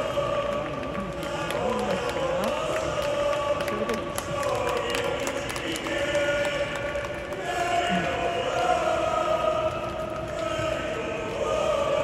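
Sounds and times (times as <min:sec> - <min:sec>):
handclaps: 0:00.0 - 0:08.7, 0:09.3 - 0:11.5
stadium crowd chanting: 0:00.0 - 0:12.0.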